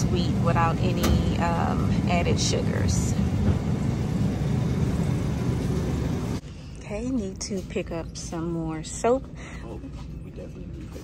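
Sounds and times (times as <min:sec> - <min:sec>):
low rumble: 0:00.0 - 0:06.5.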